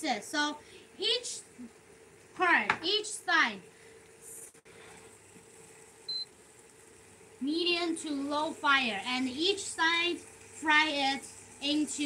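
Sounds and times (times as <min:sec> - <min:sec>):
chicken frying in a pan: 0:00.4 - 0:12.0.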